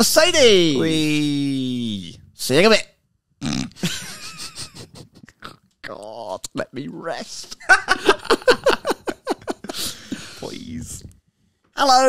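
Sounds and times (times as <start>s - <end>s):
stifled snorting laughter: 3.5s - 5.5s.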